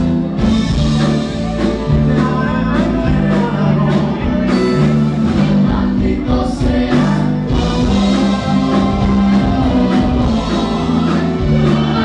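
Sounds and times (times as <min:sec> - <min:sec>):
live band playing: 0:00.0 - 0:12.0
man singing: 0:01.6 - 0:12.0.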